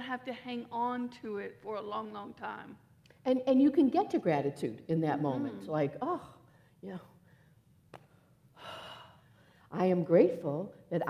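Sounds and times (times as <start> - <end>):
woman speaking: 0.0 - 7.1
woman breathing in: 8.5 - 9.7.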